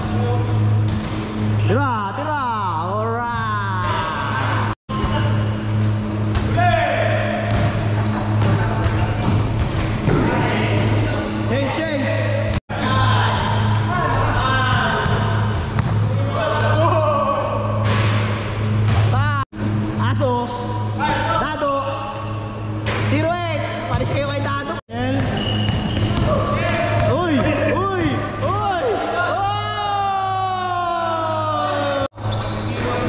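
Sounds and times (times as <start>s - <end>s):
players shouting in echoing hall: 1.6s - 9.2s, 10.2s - 18.8s, 25.9s - 32.3s
basketball bouncing on hard court: 14.8s - 16.0s, 25.1s - 27.6s.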